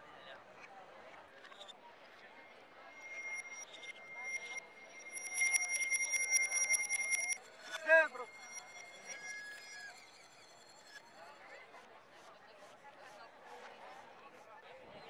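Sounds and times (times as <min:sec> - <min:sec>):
handbell ringing: 0:03.0 - 0:11.0.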